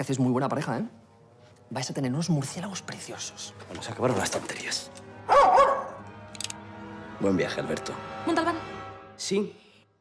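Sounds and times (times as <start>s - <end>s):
dog barking: 5.3s - 6.0s.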